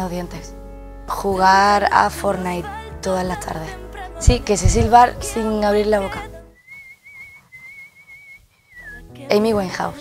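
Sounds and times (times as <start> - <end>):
woman humming whistle: 6.6 - 9.1.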